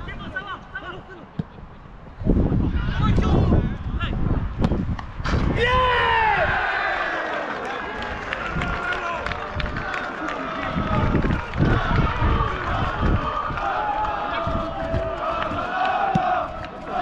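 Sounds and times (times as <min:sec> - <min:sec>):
wind rumble on microphone: 0:00.0 - 0:06.7, 0:08.0 - 0:17.0
men shouting and calling out: 0:05.4 - 0:11.0
people shouting and cheering: 0:05.4 - 0:17.0.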